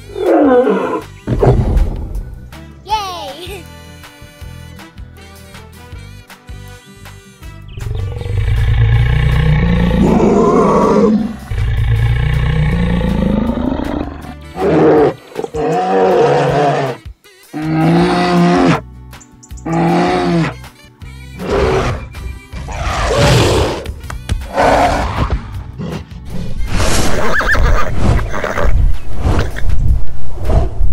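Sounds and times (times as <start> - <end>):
children's background music: 0.1 - 26.4
lion roaring: 7.8 - 17.0, 17.6 - 18.8, 19.7 - 20.6.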